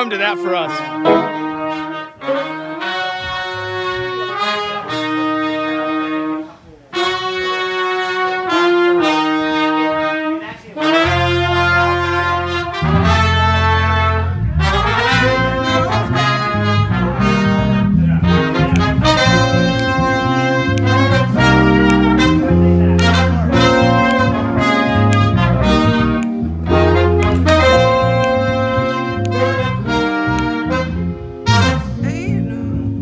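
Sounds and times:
band playing: 0:00.0 - 0:33.0
horn section playing chords: 0:00.0 - 0:33.0
bass: 0:10.9 - 0:33.0.

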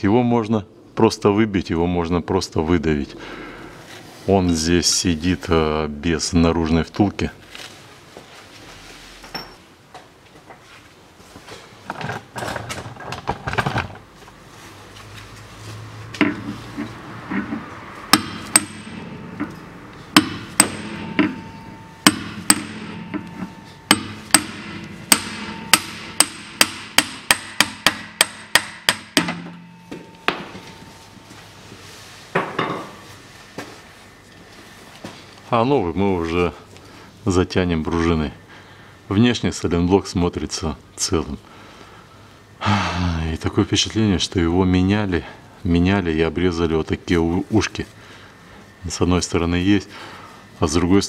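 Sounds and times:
hammer striking metal: 0:17.3 - 0:31.0.

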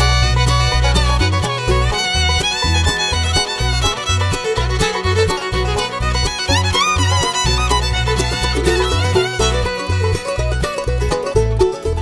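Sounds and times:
fiddle melody with sliding notes: 0:00.0 - 0:12.0
plucked-string rhythm: 0:00.0 - 0:12.0
steady bass line: 0:00.0 - 0:12.0.

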